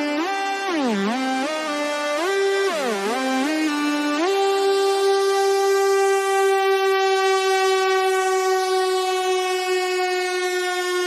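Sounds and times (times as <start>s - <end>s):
held buzzy synthesizer note: 0.0s - 11.0s.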